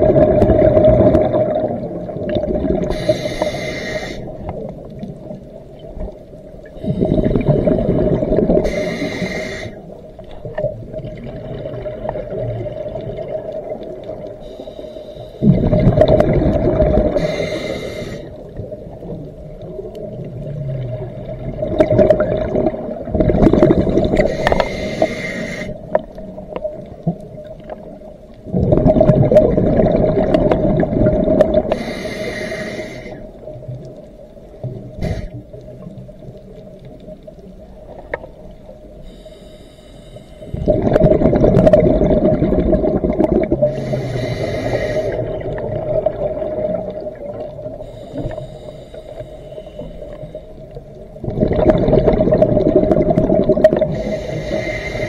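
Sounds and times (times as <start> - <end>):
bubbling exhalations underwater: 0.0 - 3.1, 6.9 - 8.8, 15.4 - 17.4, 19.8 - 24.6, 28.4 - 31.8, 40.5 - 47.8, 51.2 - 54.2
regulator hissing inhalation: 2.9 - 4.4, 8.6 - 9.9, 14.4 - 15.5, 17.1 - 18.4, 24.2 - 25.9, 31.7 - 33.3, 35.0 - 35.4, 39.0 - 40.6, 43.7 - 45.4, 47.8 - 50.5, 53.9 - 55.0.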